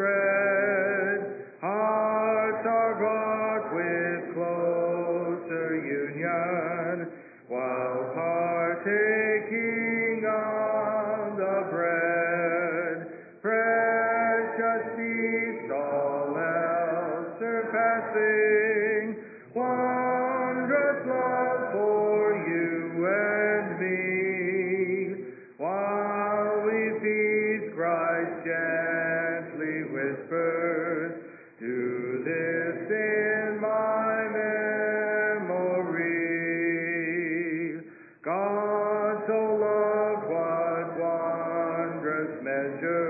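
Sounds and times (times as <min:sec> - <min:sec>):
congregation singing a hymn: 0:00.0 - 0:43.0.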